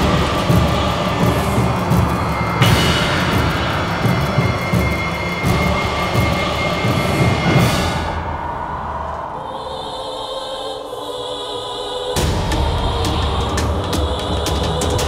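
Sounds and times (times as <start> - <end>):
deep repeated beats: 0.0 - 9.4, 12.2 - 15.0
dramatic background music: 0.0 - 15.0.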